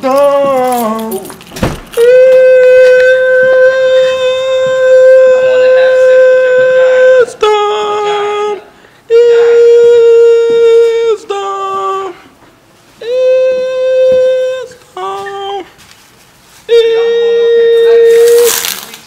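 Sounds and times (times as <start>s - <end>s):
person singing long held notes: 2.0s - 12.3s, 13.0s - 15.7s.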